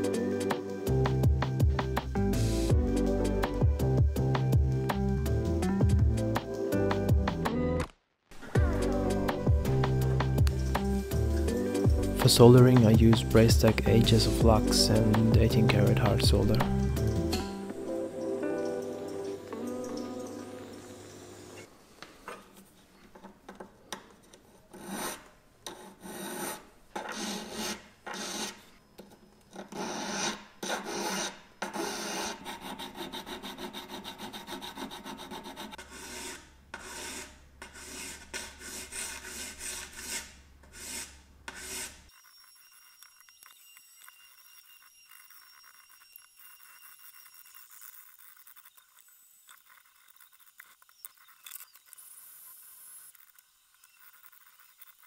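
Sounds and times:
hand file rasping on metal: 24.7s - 28.6s, 29.6s - 42.2s.

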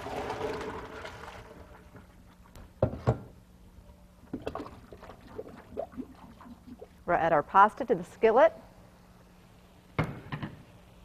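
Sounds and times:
water pouring into a colander: 0.0s - 1.8s.

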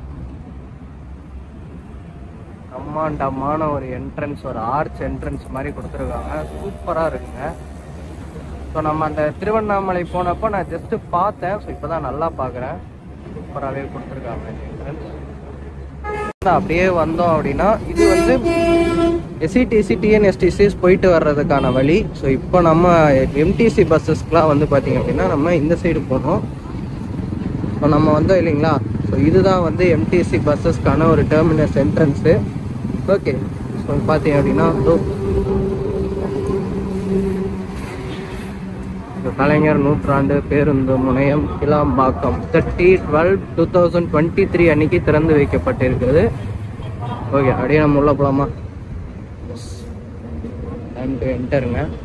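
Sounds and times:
vehicle engine humming: 0.0s - 46.9s
road traffic rumble: 0.0s - 52.0s
man talking: 2.7s - 7.6s, 8.7s - 15.2s, 16.4s - 18.7s, 19.4s - 26.5s, 27.8s - 35.2s, 39.2s - 46.4s, 47.0s - 48.6s, 50.8s - 52.0s
vehicle horn: 6.2s - 7.6s, 16.0s - 16.4s, 17.9s - 19.4s, 21.6s - 22.0s.

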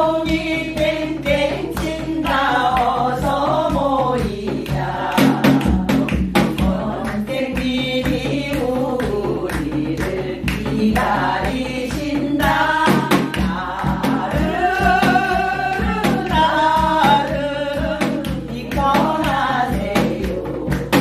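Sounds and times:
sharp percussive strokes: 0.0s - 21.0s
woman singing with vibrato: 0.0s - 21.0s.

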